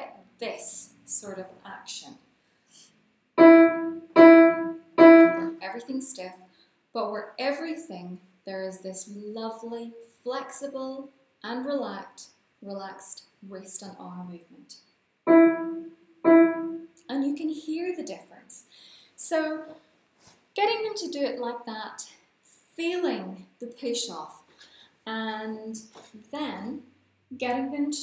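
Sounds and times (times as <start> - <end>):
piano note struck staccato: 3.4 - 5.6, 15.3 - 16.9.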